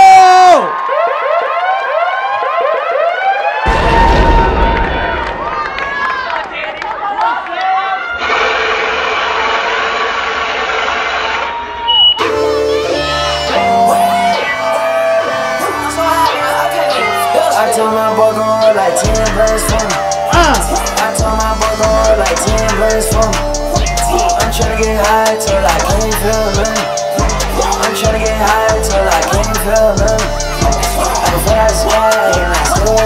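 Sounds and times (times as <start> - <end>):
crowd cheering and whooping: 0.0 - 8.8, 11.3 - 16.9
crowd applauding: 4.7 - 10.1
hip hop beat: 12.2 - 33.0
dance music with heavy bass: 13.5 - 33.0.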